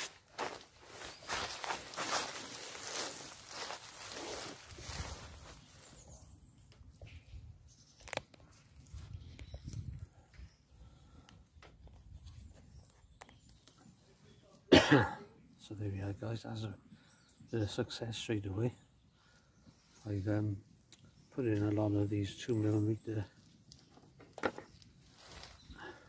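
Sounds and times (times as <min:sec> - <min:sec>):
footsteps: 0:00.0 - 0:05.6
rustling of gear: 0:00.0 - 0:06.0.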